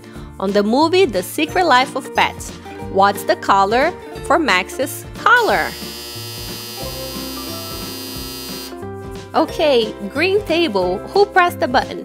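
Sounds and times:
background music: 0.0 - 12.0
electronic buzzer tone: 5.4 - 8.8.

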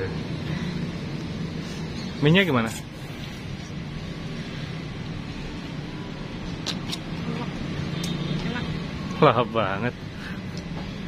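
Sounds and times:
road traffic hum: 0.0 - 11.0.

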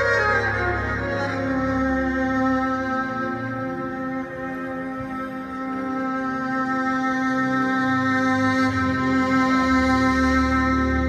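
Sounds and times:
amplified violin long note: 0.0 - 11.0
lower accompanying notes: 0.0 - 11.0.

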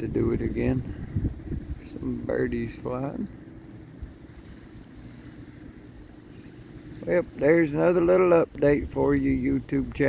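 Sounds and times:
wind on microphone: 0.0 - 10.0.

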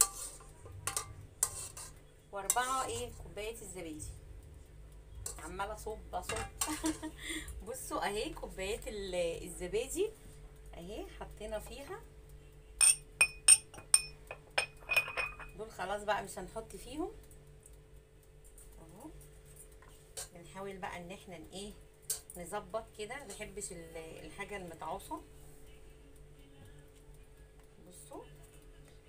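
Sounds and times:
metal ladle scraping metal pot: 0.0 - 3.2
small glass cups clinking: 12.8 - 15.6.

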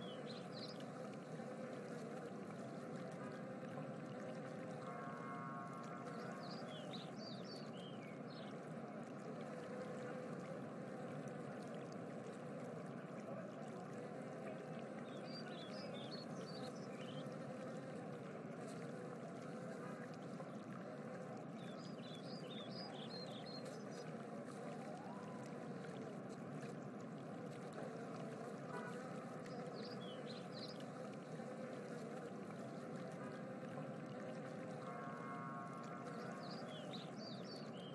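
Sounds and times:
rushing noise like running water: 0.0 - 37.9.

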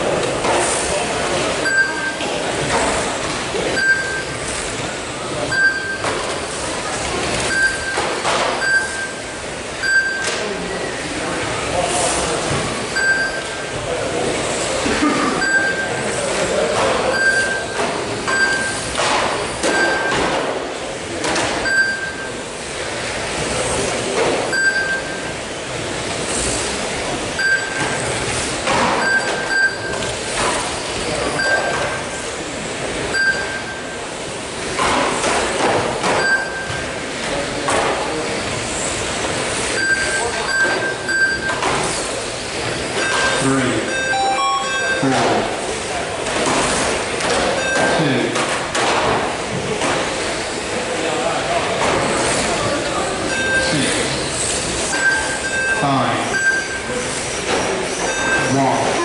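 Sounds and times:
short high beeps: 1.6 - 2.2, 3.7 - 4.4, 5.5 - 6.1, 7.5 - 10.4, 13.0 - 13.6, 15.4 - 16.0, 17.1 - 18.8, 19.7 - 20.3, 21.6 - 22.4, 24.5 - 25.3, 27.4 - 28.0, 29.0 - 30.0, 31.4 - 32.0, 33.1 - 34.0, 36.2 - 36.8, 39.8 - 41.6, 43.0 - 45.6, 47.5 - 48.1, 53.3 - 54.0, 54.9 - 56.9, 58.0 - 58.7.

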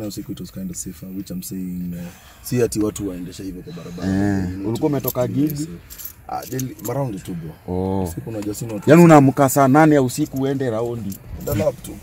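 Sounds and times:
light metallic jingles: 0.0 - 12.0
men's vocal sounds: 3.5 - 10.4.

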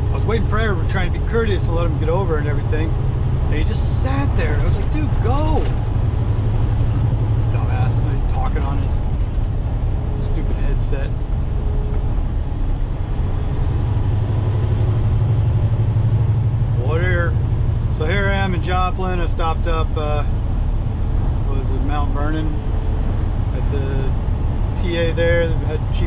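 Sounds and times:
truck engine and road drone: 0.0 - 26.0
person speaking: 3.5 - 5.7.

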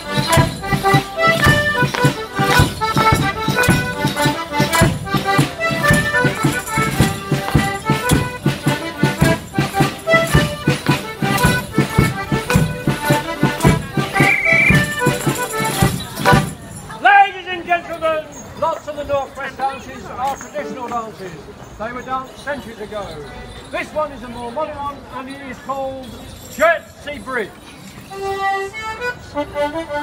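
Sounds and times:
live folk dance tune: 0.0 - 19.0, 26.1 - 30.0.

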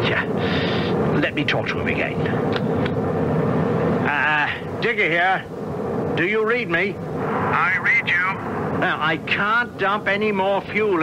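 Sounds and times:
propeller airplane engine drone: 0.0 - 11.0.

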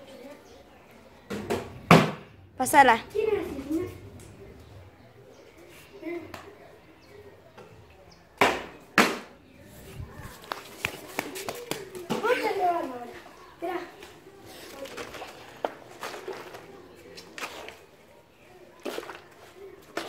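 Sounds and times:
child's wordless voice: 3.0 - 4.2, 12.1 - 15.4.

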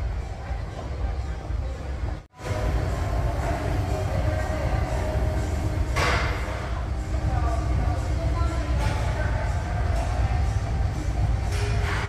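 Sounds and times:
faint background music: 0.0 - 12.0
low rumble of gym room noise: 0.0 - 12.0.

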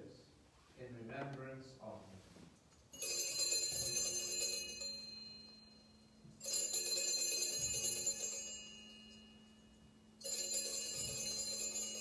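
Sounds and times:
altar bell ringing: 2.9 - 12.0.

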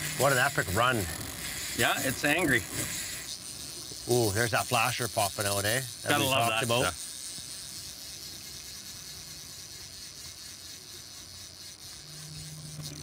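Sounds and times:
outboard motors rumbling: 0.0 - 13.0
water hissing: 0.0 - 13.0.

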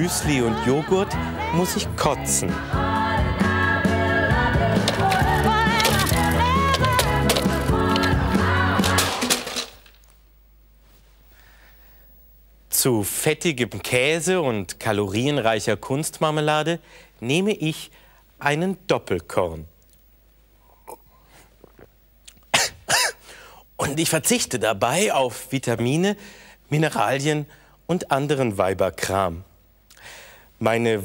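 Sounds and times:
music: 0.0 - 9.8
man coughing harshly: 22.5 - 23.2.

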